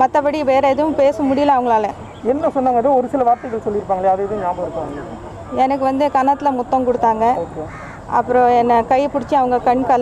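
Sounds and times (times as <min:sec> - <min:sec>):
woman speaking into microphones: 0:00.0 - 0:02.0, 0:05.5 - 0:10.0
crow cawing: 0:03.1 - 0:04.4, 0:07.6 - 0:08.2.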